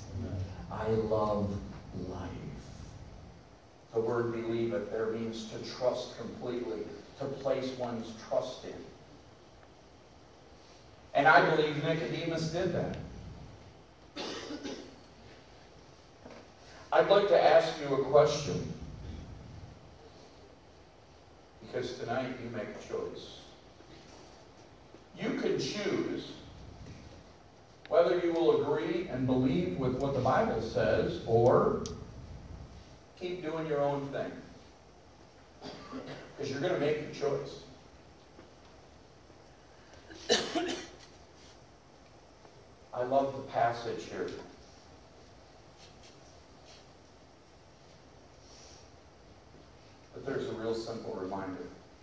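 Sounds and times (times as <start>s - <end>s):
person coughing: 14.2s - 15.0s, 35.6s - 36.4s, 40.1s - 41.0s.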